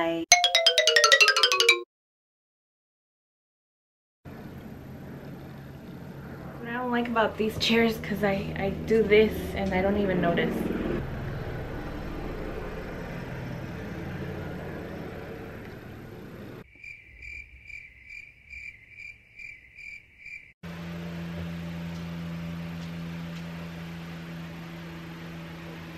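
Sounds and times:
cricket chirping: 16.6 - 20.6.

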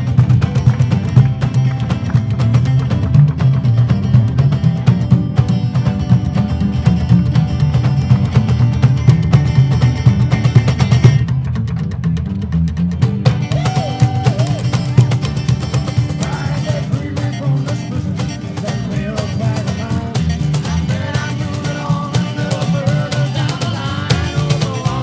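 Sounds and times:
acoustic string instrument strumming: 0.0 - 25.0
double bass line: 0.0 - 25.0.

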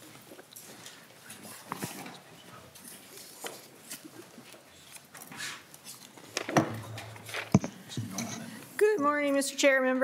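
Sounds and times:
papers rustling: 2.8 - 7.8
handling noise: 5.1 - 7.9.

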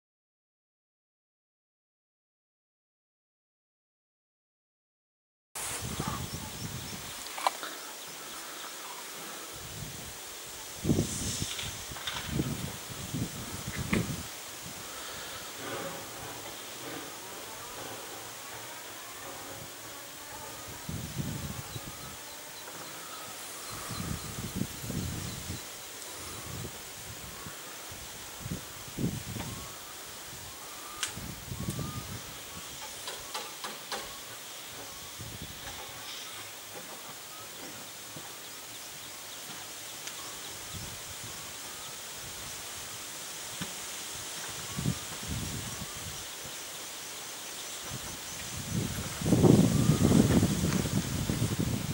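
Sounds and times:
distant steam locomotive: 5.6 - 51.9
steam hissing: 5.6 - 51.9
low rumbling gusts: 9.4 - 18.6, 23.4 - 32.7, 47.8 - 51.9.

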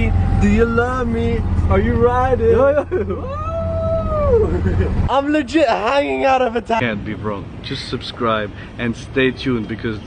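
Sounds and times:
low rumble of moving car: 0.0 - 10.0
person whooping: 3.2 - 4.6.

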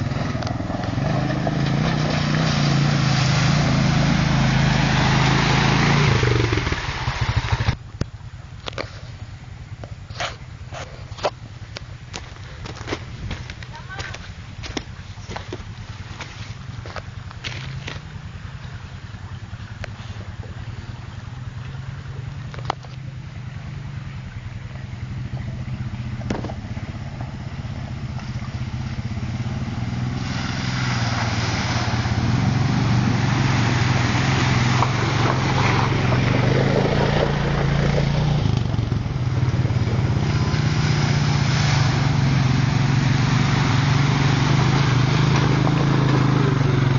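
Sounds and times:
quad bike engine running: 0.0 - 46.9
water spraying from wheels: 0.0 - 46.9.

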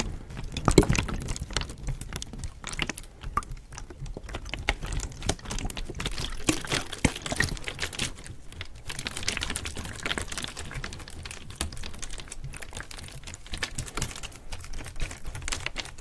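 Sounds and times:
water sloshing in bottle: 0.0 - 13.5
plastic bottle crinkling: 0.0 - 16.0.

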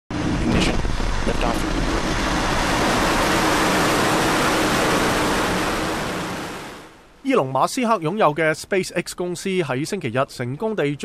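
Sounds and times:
rocket engines roaring: 0.1 - 7.0
commentator speaking: 7.2 - 11.0.

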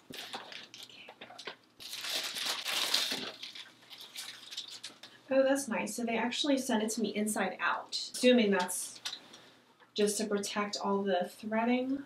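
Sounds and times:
plastic packaging crinkling: 0.0 - 5.2.

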